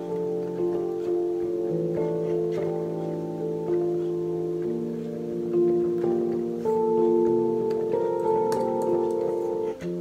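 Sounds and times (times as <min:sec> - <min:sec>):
electric piano chords: 0:00.0 - 0:10.0.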